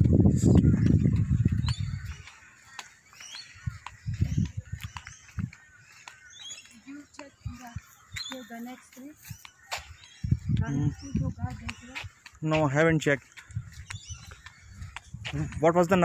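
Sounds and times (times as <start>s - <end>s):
soft low thumps: 0.0s - 2.3s, 3.5s - 5.7s, 9.2s - 16.0s
birds chirping: 0.0s - 16.0s.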